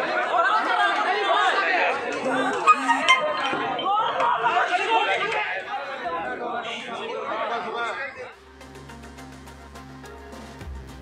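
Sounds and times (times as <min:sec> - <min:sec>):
crowd talking and shouting: 0:00.0 - 0:09.2.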